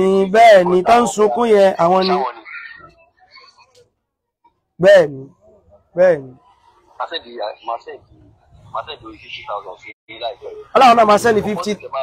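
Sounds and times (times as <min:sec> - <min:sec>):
faint murmured speech: 0:00.6 - 0:10.8.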